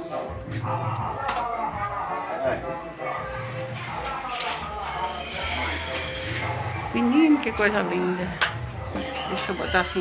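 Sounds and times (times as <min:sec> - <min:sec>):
indistinct voices speaking: 0:00.6 - 0:10.0.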